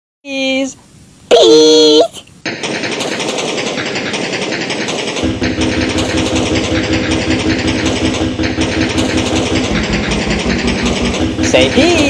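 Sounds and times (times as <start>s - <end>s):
steady hum: 3.4s - 12.0s
low rhythmic throb: 5.2s - 12.0s
machine motor buzzing: 5.2s - 12.0s.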